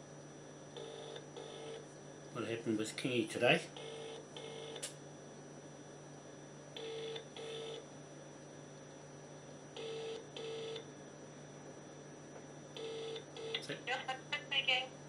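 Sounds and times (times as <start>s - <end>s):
telephone ringback tone: 3.8s - 4.8s, 6.8s - 7.8s, 9.8s - 10.8s, 12.8s - 13.5s.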